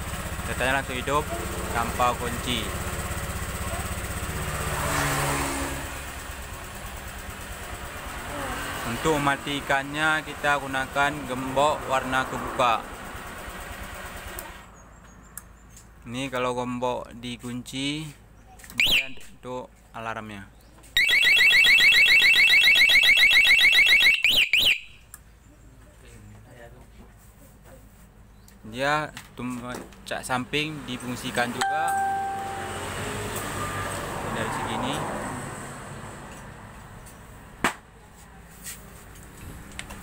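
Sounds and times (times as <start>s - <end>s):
scooter engine idling: 0.0s - 4.6s, 5.9s - 12.1s, 12.8s - 16.0s, 31.6s - 33.0s
alarm chirps: 18.8s - 19.2s, 21.0s - 25.0s, 31.6s - 33.2s
motorcycle alarm siren warbling: 18.8s - 19.2s, 21.0s - 25.0s, 31.6s - 33.9s.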